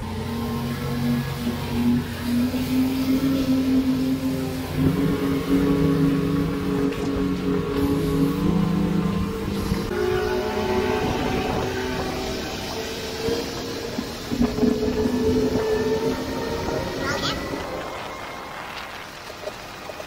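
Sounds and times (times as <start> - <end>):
outboard motors droning: 0.0 - 20.0
rushing wind and water: 0.0 - 20.0.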